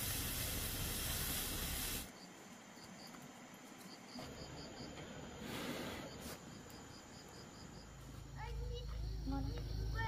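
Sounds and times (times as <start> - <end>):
pot boiling hard: 0.0 - 2.1
steam hissing from lid: 0.0 - 2.1.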